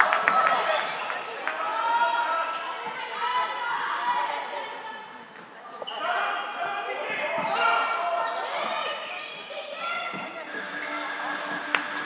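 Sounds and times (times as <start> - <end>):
voices calling and shouting: 0.3 - 11.7.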